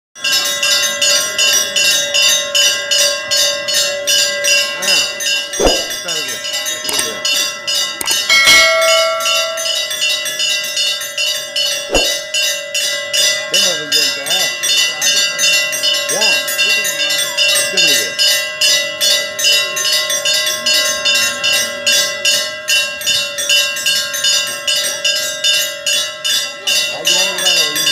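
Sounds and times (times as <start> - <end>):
metal temple bells ringing rapidly: 0.2 - 27.9.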